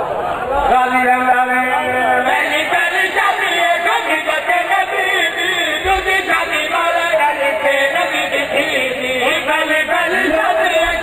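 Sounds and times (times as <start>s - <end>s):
man chanting through loudspeakers: 0.6s - 11.0s.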